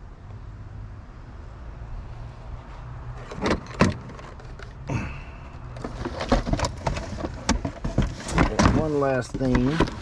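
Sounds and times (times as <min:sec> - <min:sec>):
cardboard box rustling: 0:05.7 - 0:10.0
plastic knocks and clatters: 0:05.8 - 0:10.0.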